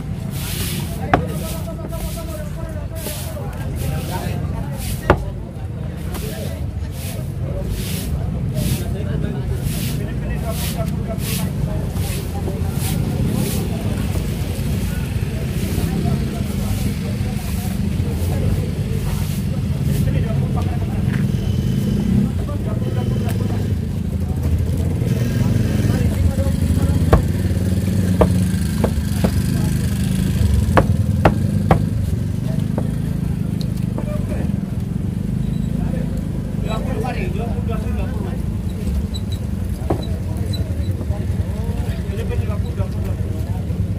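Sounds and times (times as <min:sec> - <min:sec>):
indistinct voices: 0:00.0 - 0:43.9
knife chopping on wooden block: 0:01.1 - 0:01.5, 0:05.1 - 0:05.3, 0:27.0 - 0:29.6, 0:30.7 - 0:32.0.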